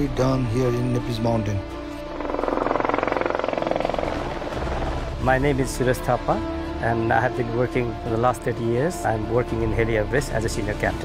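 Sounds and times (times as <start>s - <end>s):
helicopter rotor beating: 2.1s - 5.5s.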